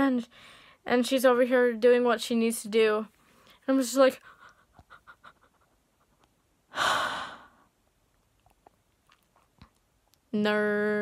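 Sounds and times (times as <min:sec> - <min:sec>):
woman panting: 0:06.7 - 0:07.7.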